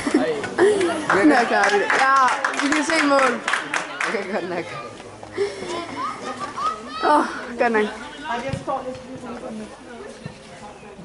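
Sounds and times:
boys shouting: 6.0 - 8.3.

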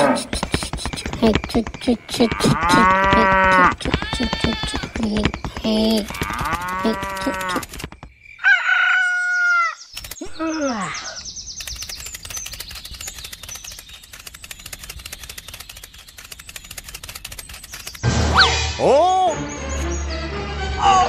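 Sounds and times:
wings flapping: 0.0 - 8.2, 11.6 - 18.5
chicken calls: 0.0 - 11.2.

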